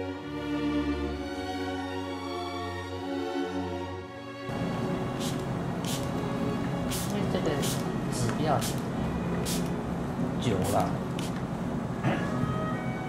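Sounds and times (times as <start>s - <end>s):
spray bottle hissing: 5.1s - 6.2s, 6.8s - 7.9s, 8.6s - 9.7s, 11.2s - 11.4s.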